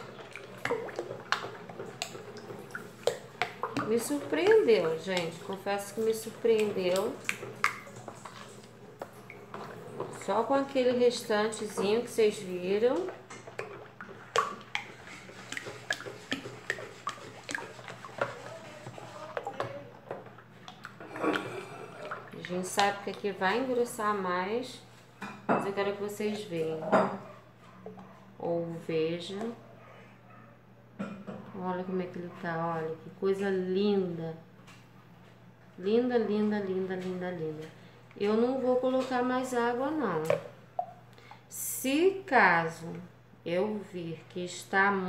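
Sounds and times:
small splashes: 0.0 - 24.3
liquid sloshing in plastic basin: 0.0 - 29.6.

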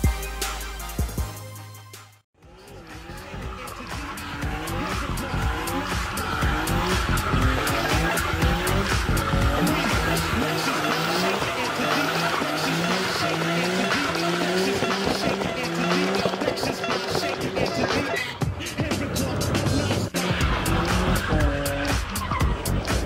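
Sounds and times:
background music: 0.0 - 23.0
car engine at high revs: 2.4 - 23.0
tyres squealing: 2.8 - 23.0.

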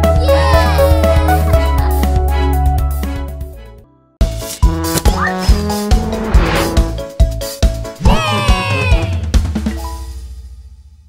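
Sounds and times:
cartoon jingle with drums and chords: 4.2 - 10.4.

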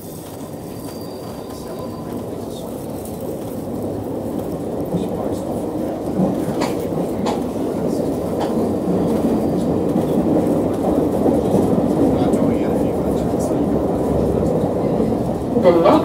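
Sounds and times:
train rumbling through tunnel: 0.0 - 16.0
recorded station announcement: 0.3 - 16.0.

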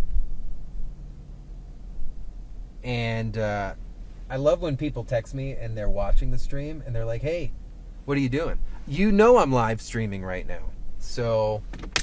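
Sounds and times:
dull low thumps: 0.0 - 4.3
low rumble in truck cab: 0.0 - 12.0.

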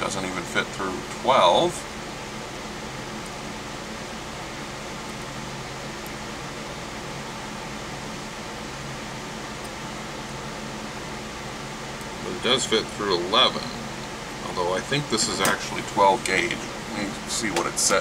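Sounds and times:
fan running: 0.0 - 18.0.

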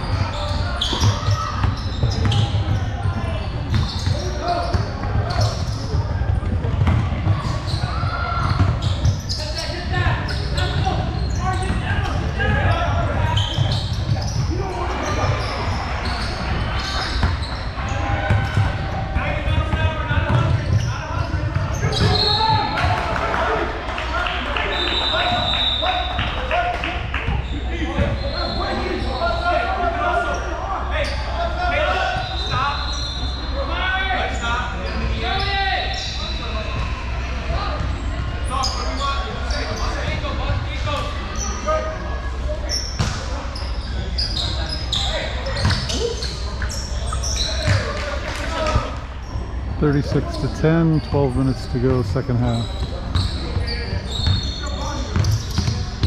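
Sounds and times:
sneakers squeaking: 0.0 - 23.0, 27.2 - 56.0
players and spectators calling out: 0.0 - 56.0
basketball bouncing on hardwood: 6.5 - 7.6, 19.6 - 20.6.

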